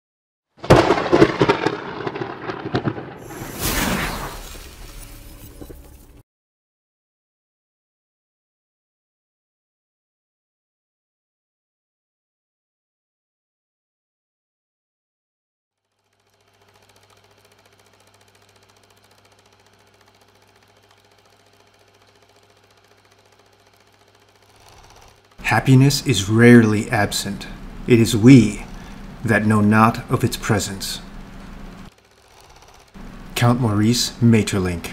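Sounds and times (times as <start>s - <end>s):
whoosh: 3.2s - 5.0s
film projector clatter: 15.8s - 34.9s
low hum: 25.4s - 31.9s.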